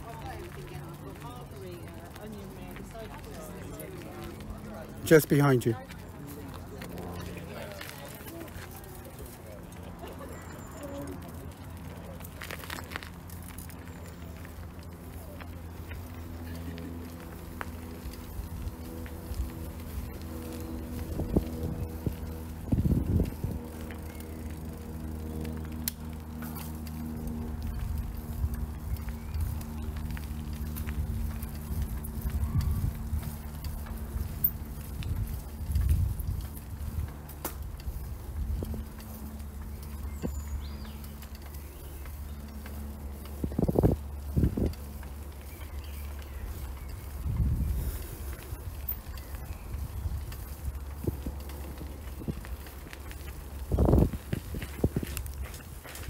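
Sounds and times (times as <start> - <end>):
diesel engine drone: 0.0 - 56.0
footsteps on gravel: 0.0 - 56.0.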